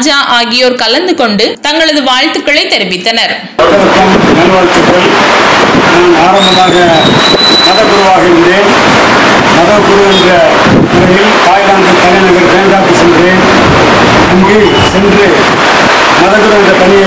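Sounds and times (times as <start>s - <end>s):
steady background noise: 0.0s - 17.0s
man speaking into microphone: 3.6s - 15.6s, 16.2s - 17.0s.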